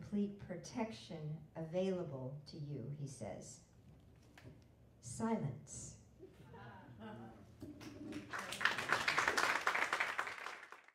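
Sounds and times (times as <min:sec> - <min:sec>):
audience applauding: 0:07.8 - 0:10.9.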